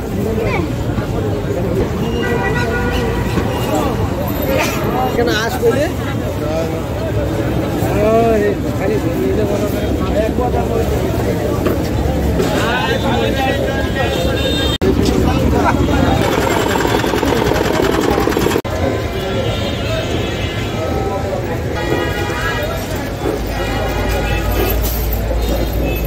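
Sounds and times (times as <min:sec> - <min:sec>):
people talking: 0:03.4 - 0:25.8.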